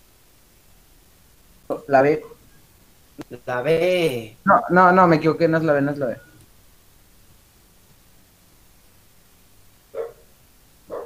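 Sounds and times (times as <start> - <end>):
dog barking: 9.9 - 10.3.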